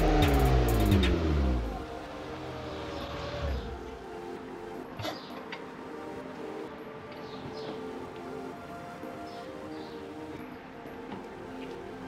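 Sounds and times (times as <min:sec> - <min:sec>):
car engine revving: 0:00.0 - 0:04.0.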